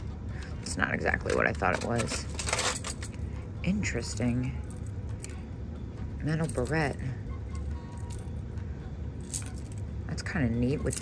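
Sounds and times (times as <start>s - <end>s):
low steady hum: 0.0s - 11.0s
metal chain clinking: 1.2s - 3.3s, 6.3s - 7.1s, 7.9s - 8.4s, 9.2s - 9.9s, 10.7s - 11.0s.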